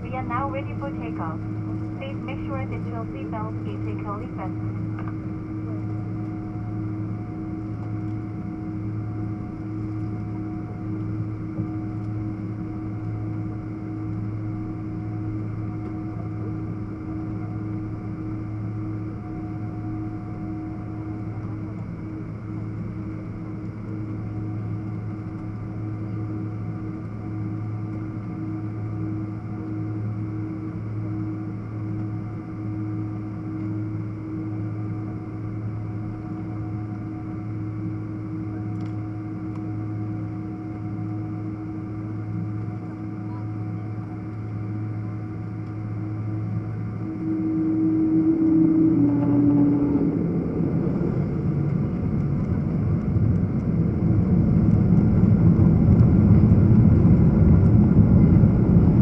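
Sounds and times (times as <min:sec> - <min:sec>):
steady higher tones: 0:00.0 - 0:05.7, 0:45.8 - 0:53.3
cabin air system: 0:00.0 - 0:59.0
jet engines at low power: 0:00.0 - 0:59.0.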